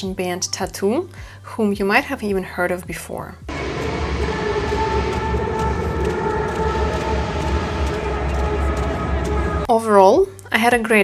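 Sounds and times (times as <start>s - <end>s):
live music over stadium speakers: 3.5s - 9.7s.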